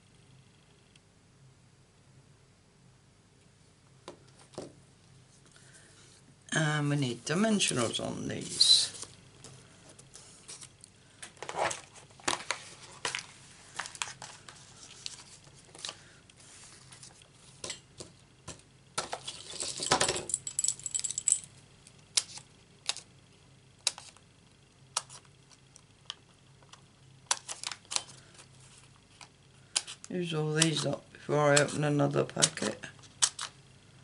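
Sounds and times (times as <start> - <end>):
paper and card rustling: 7.3 - 18.1, 27.3 - 33.5.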